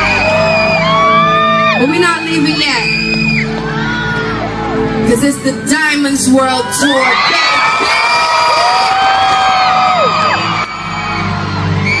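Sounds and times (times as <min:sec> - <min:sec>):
crowd screaming and whooping: 0:00.0 - 0:12.0.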